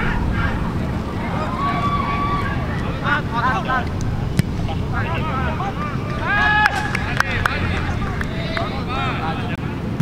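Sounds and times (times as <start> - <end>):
footballers shouting: 0.0 - 9.8
low rumble: 0.0 - 10.0.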